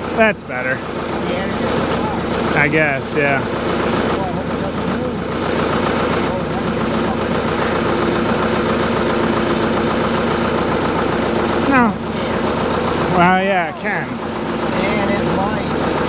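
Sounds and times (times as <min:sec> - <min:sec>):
tractor diesel engine idling: 0:00.0 - 0:16.0.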